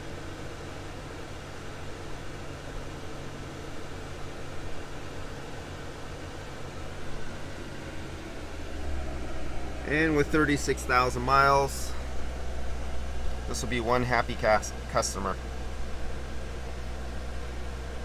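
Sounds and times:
air conditioning blower hiss: 0.0s - 18.0s
car engine idling: 5.2s - 18.0s.

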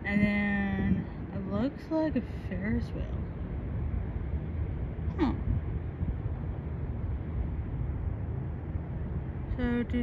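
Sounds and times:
distant city traffic hum: 0.0s - 10.0s
wind buffeting microphone: 0.0s - 10.0s.

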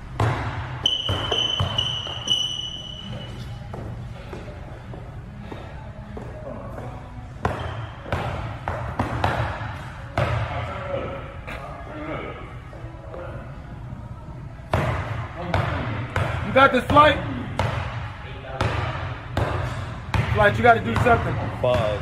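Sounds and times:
basketball bouncing on hardwood: 0.2s - 2.4s
faint voices: 3.0s - 7.4s.

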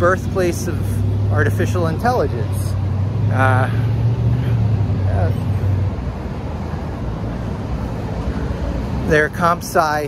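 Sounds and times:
city street traffic: 0.0s - 10.0s
vehicle engine low hum: 0.0s - 10.0s.

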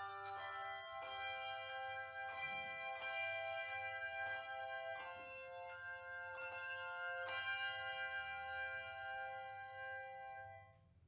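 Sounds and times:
handbell choir ringing chords: 0.0s - 10.7s.

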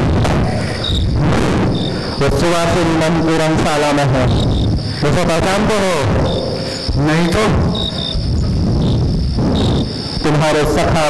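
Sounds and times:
crickets chirping: 0.0s - 11.0s
low rumble of hall noise: 0.0s - 11.0s.

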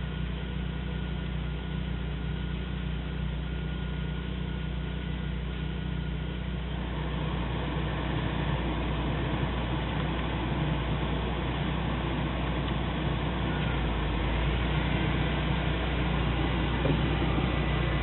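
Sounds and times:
car engine idling: 0.0s - 18.0s
blower fan rushing air: 6.7s - 18.0s.

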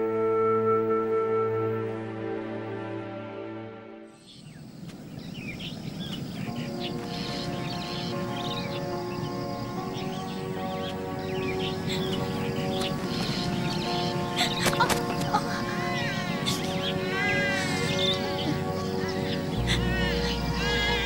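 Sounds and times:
soft music with long held notes: 0.0s - 4.4s, 6.1s - 21.0s
steady outdoor hiss: 0.0s - 21.0s
small birds chirping: 4.2s - 21.0s.

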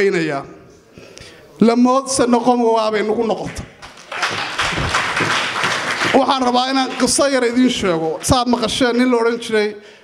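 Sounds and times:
audience applauding: 3.8s - 8.7s.

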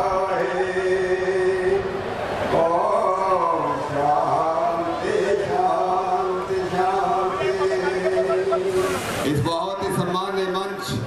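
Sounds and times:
amplified voices chanting: 0.0s - 9.4s.

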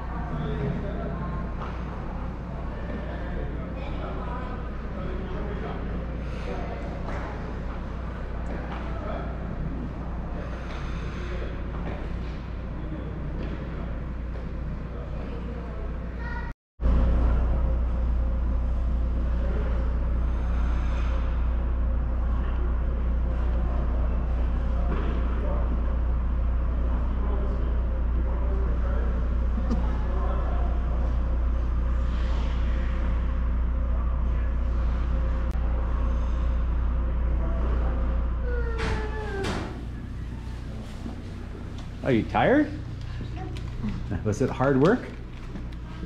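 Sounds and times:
distant voices: 0.0s - 46.0s
loud low hum: 0.0s - 46.0s.

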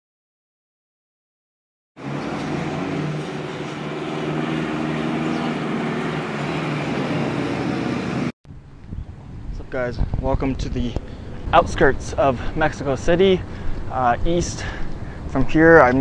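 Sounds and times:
vehicle engine running: 2.0s - 8.3s
road noise: 2.0s - 16.0s.

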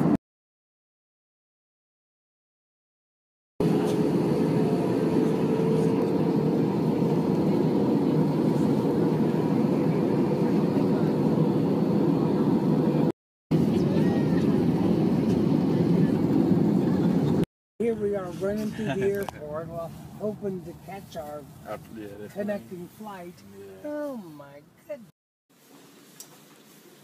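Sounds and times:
jet cabin engine and airflow drone: 3.6s - 17.4s.

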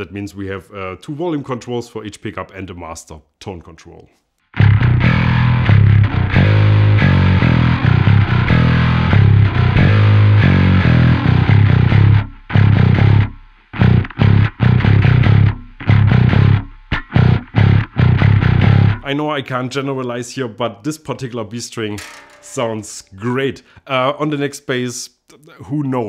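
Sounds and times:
electric bass riff: 4.6s - 19.1s.

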